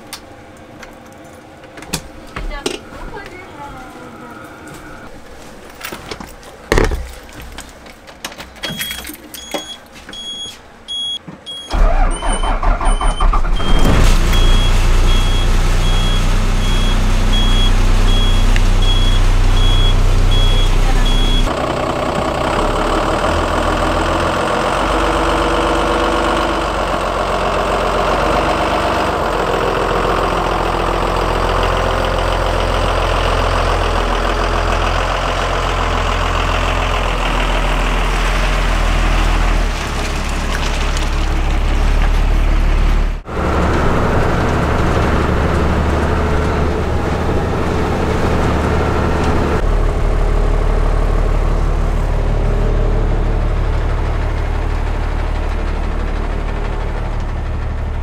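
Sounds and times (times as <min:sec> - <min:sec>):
bus engine starting and running: 0:07.5 - 0:58.0
high beep from dashboard: 0:09.4 - 0:13.8, 0:14.4 - 0:21.5.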